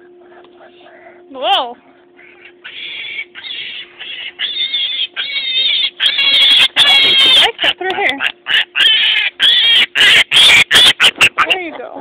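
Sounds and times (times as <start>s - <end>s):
piglet squealing: 2.2s - 11.9s.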